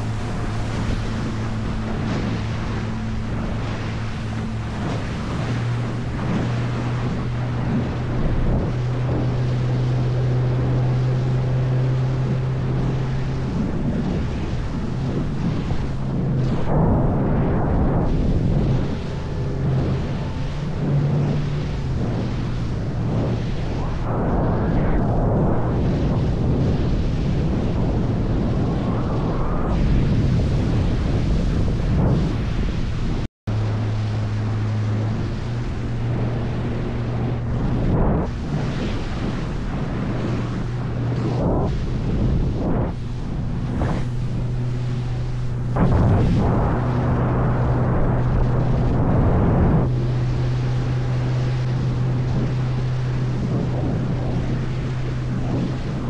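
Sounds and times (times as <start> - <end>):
outboard motor humming: 0.0 - 56.0
water rushing off hull: 0.0 - 56.0
wind buffeting microphone: 0.0 - 56.0.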